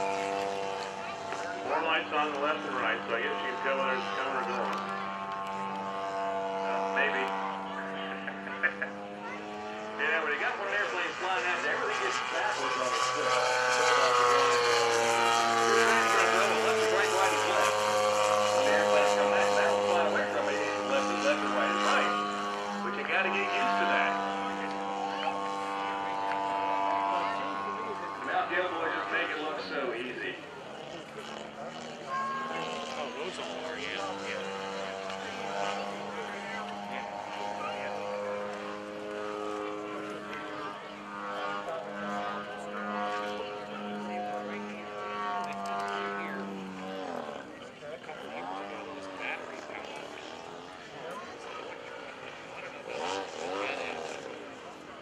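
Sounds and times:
model airplane engine: 0.0 - 55.0.

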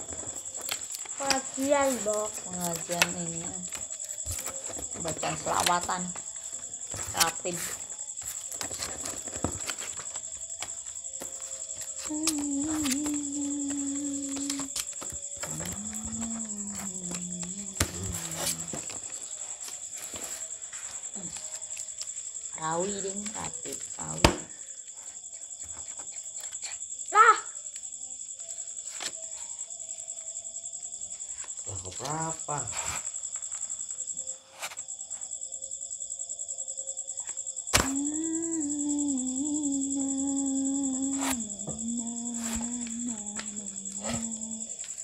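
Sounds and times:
crickets chirping: 0.0 - 45.0
person humming: 12.0 - 14.8, 15.4 - 18.9, 37.8 - 44.9
wordless vocal sounds: 15.4 - 18.8, 37.8 - 44.8.

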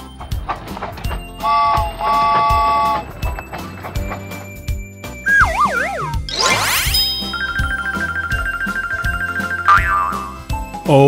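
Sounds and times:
children's backing music: 0.0 - 11.0
high tinkling repeated note: 3.8 - 9.9
quick rising sweep: 5.3 - 7.2.

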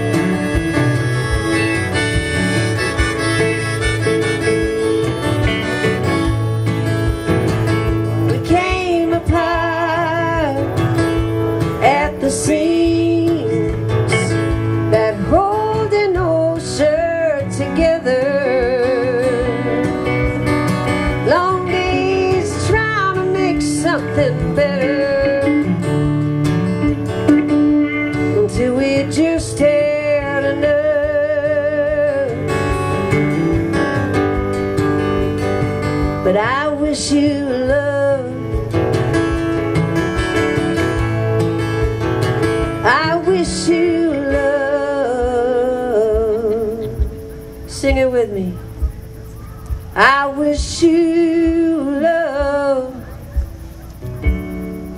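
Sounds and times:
electric guitar solo: 0.0 - 16.0
strummed acoustic guitar: 0.0 - 54.9.

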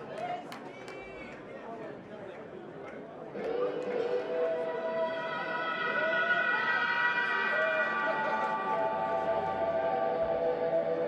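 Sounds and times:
droning electric guitar: 3.4 - 11.0.

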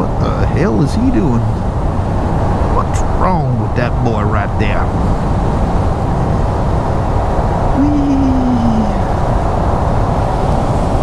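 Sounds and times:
engine and road noise: 0.0 - 11.0
wind rushing over microphone: 0.0 - 11.0.

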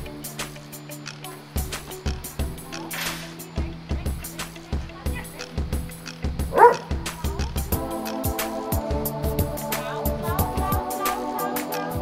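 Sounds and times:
background music with steady beat: 0.0 - 12.0
dog barking: 6.5 - 7.0.

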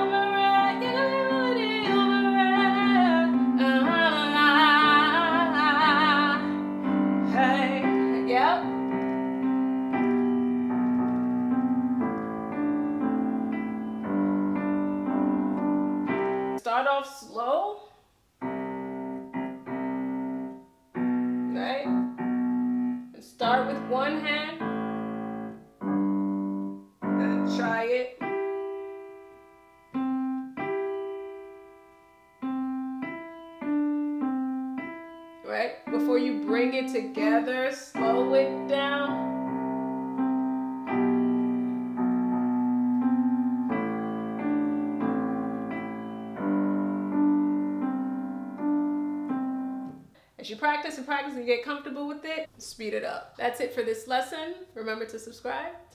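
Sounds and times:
digital piano sustained notes: 0.0 - 16.9, 18.4 - 52.2.

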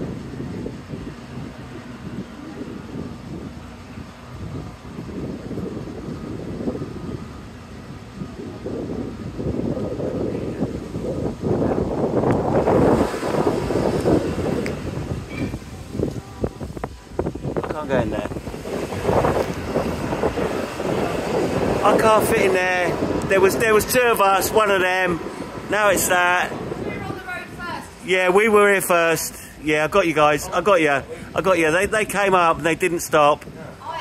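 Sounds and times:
wind rumble on microphone: 0.0 - 34.0
microphone handling noise: 8.2 - 23.7.

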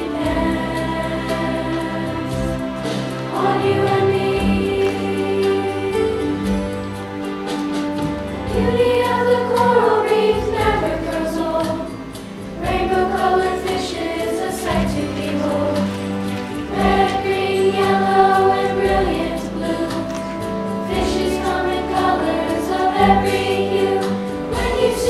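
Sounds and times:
children's choir singing: 0.0 - 25.0
instrumental accompaniment: 0.0 - 25.0.

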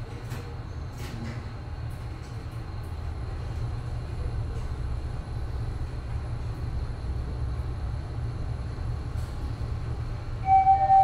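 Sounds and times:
elevator rumbling: 8.8 - 11.0.

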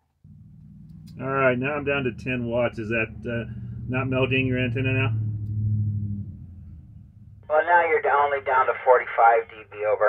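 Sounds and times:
steady low hum: 0.2 - 10.0
man speaking: 1.2 - 5.1, 7.5 - 10.0.

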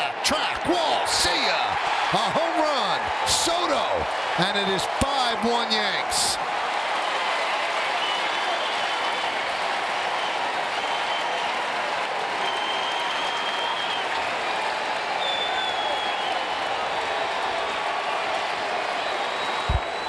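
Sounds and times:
crowd clapping: 0.0 - 20.0.

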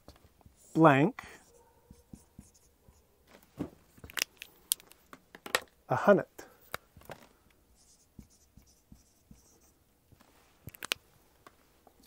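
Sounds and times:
marker writing on whiteboard: 0.0 - 3.1, 7.8 - 9.8.

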